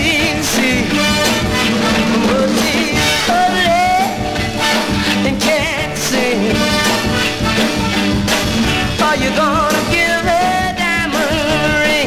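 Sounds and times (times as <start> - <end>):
soul song with band: 0.0 - 12.0.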